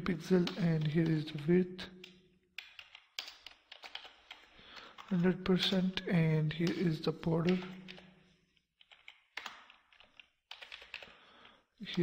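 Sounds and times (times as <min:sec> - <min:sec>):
faint keyboard typing: 0:00.3 - 0:06.0, 0:06.6 - 0:12.0.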